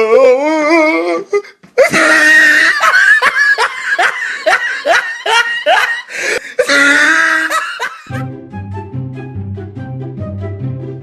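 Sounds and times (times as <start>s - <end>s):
person laughing: 1.8s - 8.2s.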